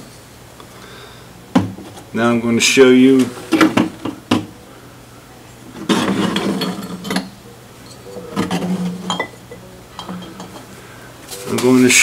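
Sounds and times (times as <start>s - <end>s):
ceramic vases chinking and scraping: 5.8s - 10.8s.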